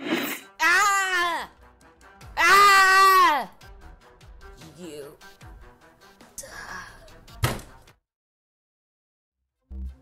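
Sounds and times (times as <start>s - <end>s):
background music: 0.0s - 8.0s, 9.6s - 10.0s
loud thump: 7.4s - 7.8s.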